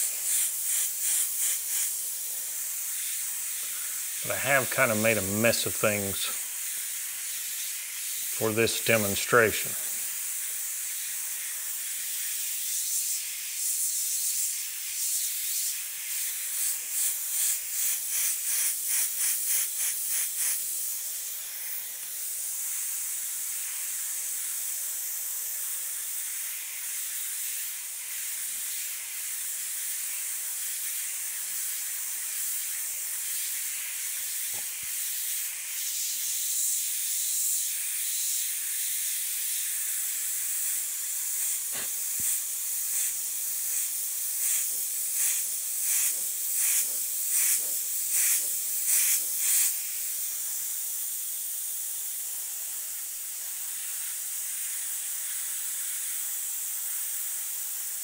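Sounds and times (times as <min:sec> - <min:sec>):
airbrush hissing: 0:00.0 - 0:58.0.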